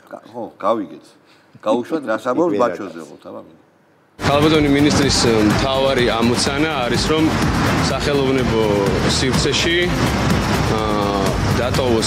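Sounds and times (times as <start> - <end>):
man speaking: 4.2 - 10.0, 10.6 - 12.0.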